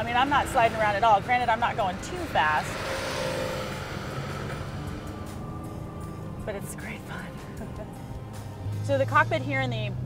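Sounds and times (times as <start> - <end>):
car engine driving past: 0.4 - 8.9.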